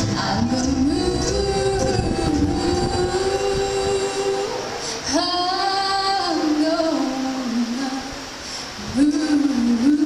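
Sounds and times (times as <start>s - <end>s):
girls singing in harmony: 0.0s - 10.0s.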